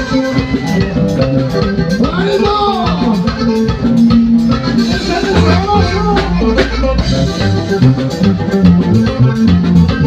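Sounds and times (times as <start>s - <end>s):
bass line: 0.0s - 10.0s
button accordion: 0.0s - 10.0s
drum kit: 0.0s - 10.0s
electric guitar: 0.0s - 10.0s.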